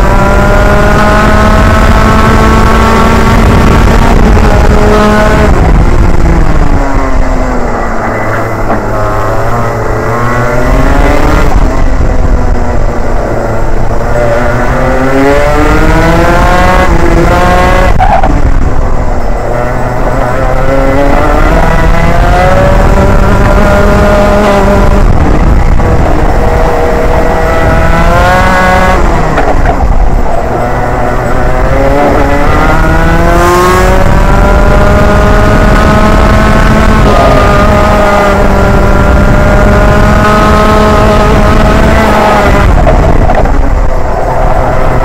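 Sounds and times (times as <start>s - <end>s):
kart engine accelerating: 0.0s - 45.0s
wind rumbling on microphone: 0.0s - 45.0s.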